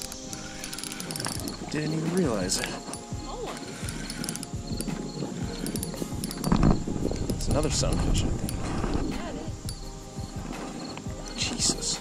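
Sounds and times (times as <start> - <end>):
fishing reel clicks and knocks: 0.0 - 1.6, 2.5 - 8.7.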